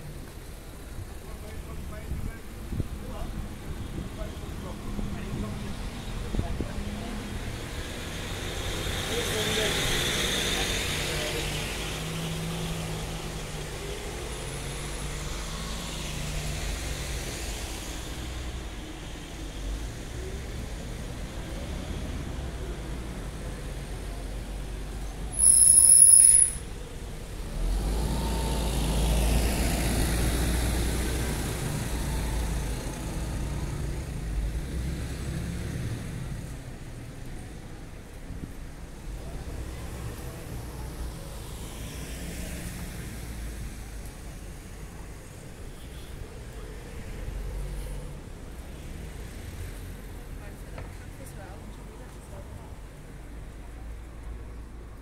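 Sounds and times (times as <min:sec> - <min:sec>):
vehicles passing: 0:00.0 - 0:55.0.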